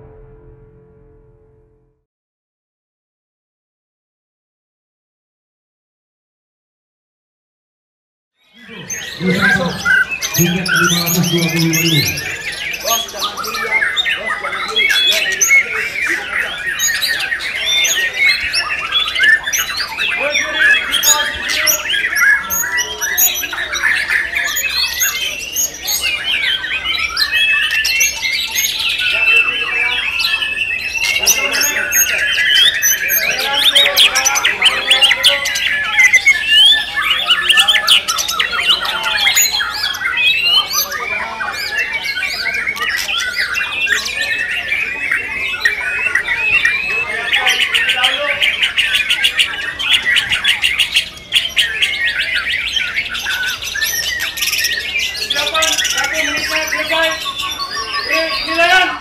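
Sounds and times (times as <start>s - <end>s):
birds singing rapid whistles: 8.5s - 59.0s.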